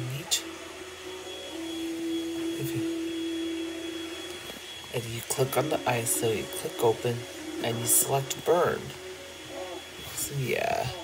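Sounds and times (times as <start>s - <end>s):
faint high whine: 0.0s - 11.0s
steady machine hum: 0.0s - 11.0s.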